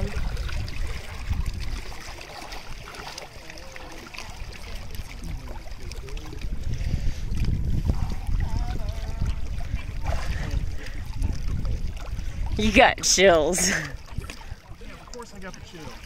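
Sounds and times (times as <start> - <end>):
water lapping against rocks: 0.0 - 16.0
water sloshing around wading legs: 0.0 - 16.0.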